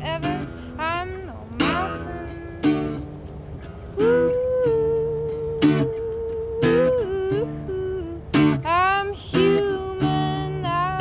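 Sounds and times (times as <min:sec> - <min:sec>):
woman singing: 0:00.0 - 0:03.1, 0:04.0 - 0:11.0
acoustic guitar strums: 0:00.0 - 0:11.0.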